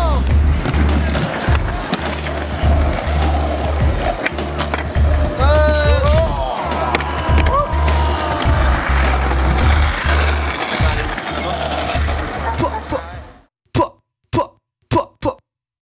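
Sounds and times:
rap beat with heavy bass: 0.0s - 15.1s.

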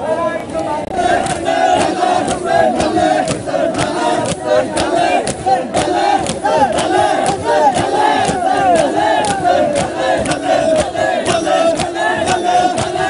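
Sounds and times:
crowd chanting: 0.0s - 13.0s
palms slapping chests: 0.9s - 13.0s.

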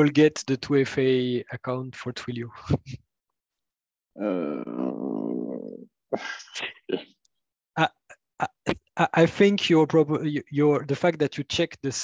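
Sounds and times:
person groaning: 4.2s - 7.0s.

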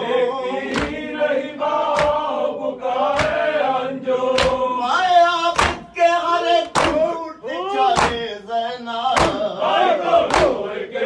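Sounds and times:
voices chanting a lament: 0.0s - 11.0s
hands striking chests: 1.9s - 2.2s, 3.1s - 3.4s, 5.6s - 5.9s, 6.8s - 7.0s.

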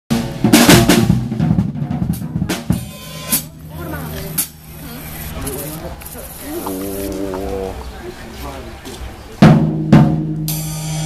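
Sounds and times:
drum kit played fast: 0.1s - 7.2s, 9.4s - 11.0s.

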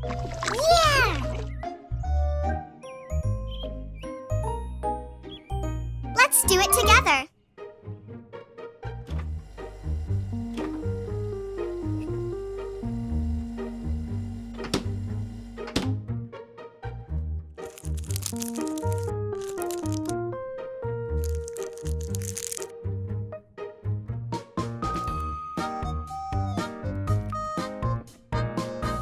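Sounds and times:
light background music: 0.0s - 29.0s
cling film crinkling: 17.6s - 20.2s, 21.2s - 22.7s.

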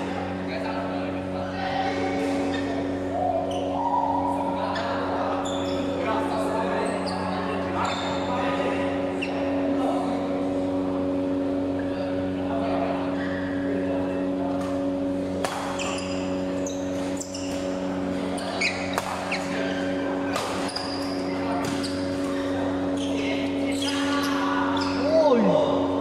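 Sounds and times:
steady hum: 0.0s - 26.0s
shoes squeaking on court: 4.7s - 6.0s, 6.8s - 8.4s, 15.5s - 25.1s
players' voices: 16.0s - 26.0s
rackets striking shuttlecocks: 18.9s - 19.3s.

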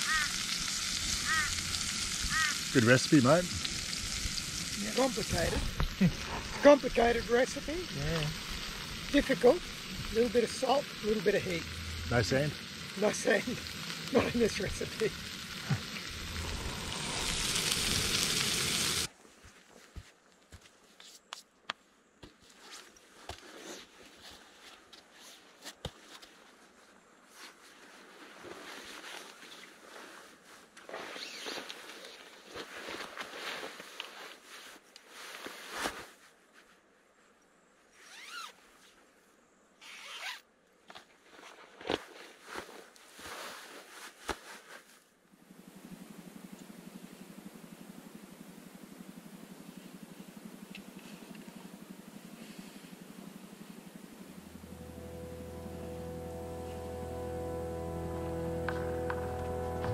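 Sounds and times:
steady hiss: 0.0s - 19.2s, 42.5s - 59.9s
nylon fabric rustling: 27.4s - 34.5s
zipper being pulled: 31.0s - 31.6s, 38.0s - 38.6s, 39.8s - 40.4s.

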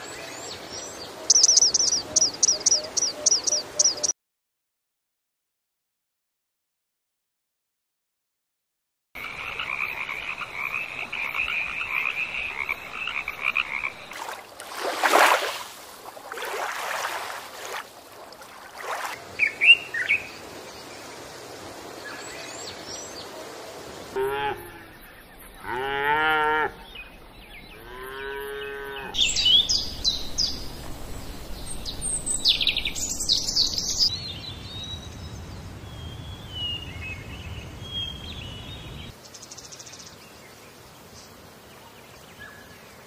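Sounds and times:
cattle mooing: 25.6s - 26.8s, 27.8s - 29.2s
bird chirps: 26.8s - 35.3s.

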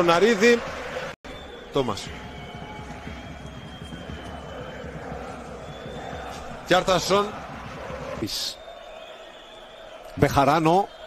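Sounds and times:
stadium crowd noise: 0.0s - 11.0s
faint high whistles: 1.3s - 6.6s, 8.2s - 11.0s.

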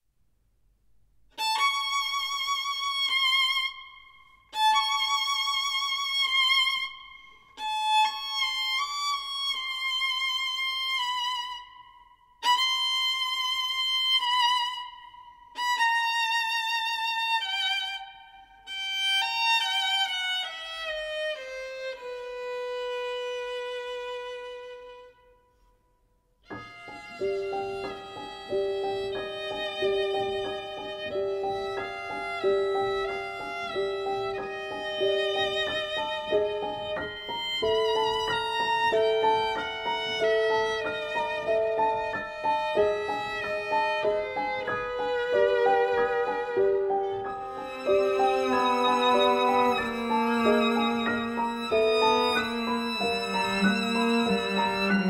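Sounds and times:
solo violin with vibrato: 1.4s - 25.3s, 26.4s - 55.0s.

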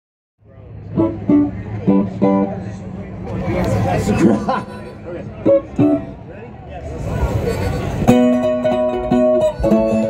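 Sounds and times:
voices: 0.4s - 10.0s
plucked string notes: 0.6s - 6.4s, 7.0s - 10.0s.

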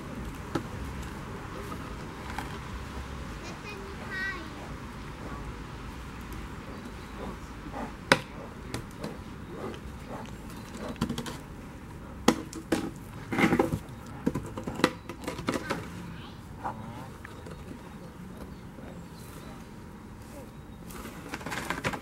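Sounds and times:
bear gnawing on wood: 0.0s - 19.0s.

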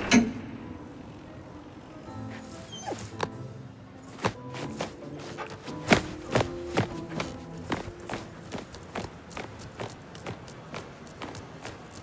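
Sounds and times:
footsteps on stone paving: 4.0s - 12.0s.

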